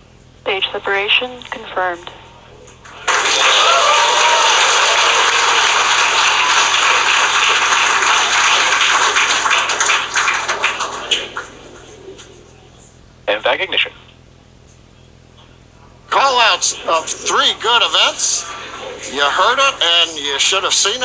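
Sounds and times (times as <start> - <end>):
crowd cheering and applauding: 2.9 - 12.0.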